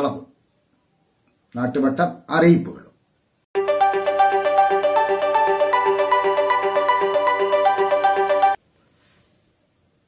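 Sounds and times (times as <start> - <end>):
electronic title jingle: 3.6 - 8.6.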